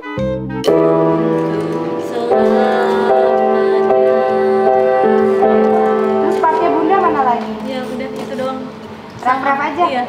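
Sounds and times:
upright piano chords: 0.0 - 9.8.

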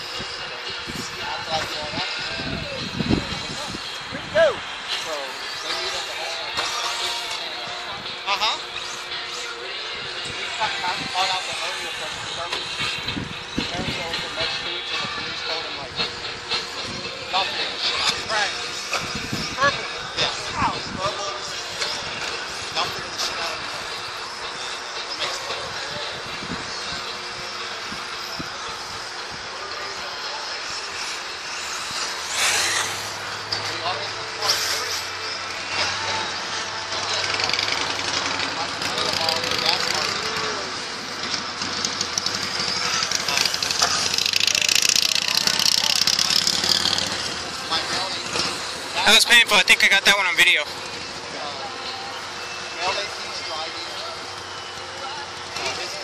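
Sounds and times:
radio-controlled car motors: 31.0 - 33.8.

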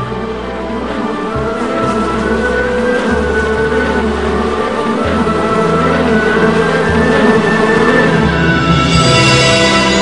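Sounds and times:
steady low rumble: 0.0 - 10.0
sustained soundtrack notes: 0.0 - 10.0.

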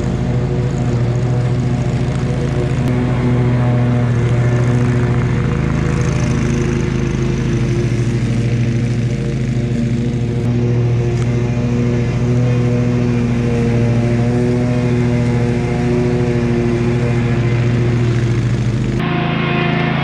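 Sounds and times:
mower engine running: 0.0 - 20.0.

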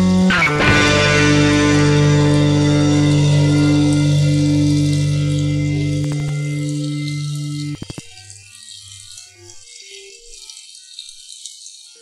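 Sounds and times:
distorted electric guitar and bass chord: 0.0 - 8.0.

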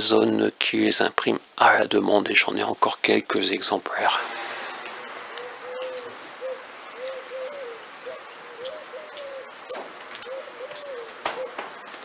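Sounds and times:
dove cooing: 5.3 - 12.0.

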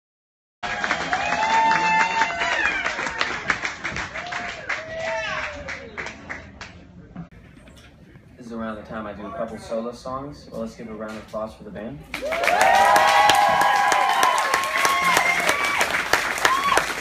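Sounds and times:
audience clapping and cheering: 0.6 - 6.7, 12.1 - 17.0
whoops and shouts: 12.2 - 17.0.

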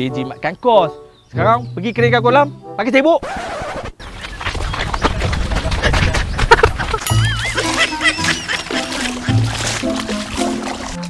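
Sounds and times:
chickens clucking: 4.0 - 11.0
water splashing and sloshing: 4.0 - 11.0.

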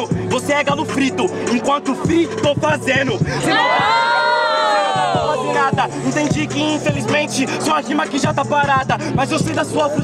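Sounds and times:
crowd shouting ooh: 3.4 - 5.8.

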